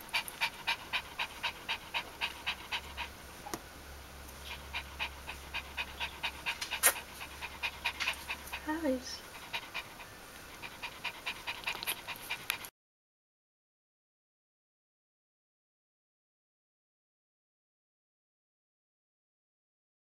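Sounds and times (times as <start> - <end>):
dog panting rapidly: 0.0 - 3.2, 4.4 - 12.7.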